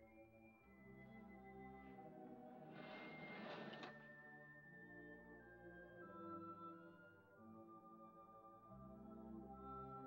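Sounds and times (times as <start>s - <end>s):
curtain fabric swishing along rod: 2.6s - 4.0s.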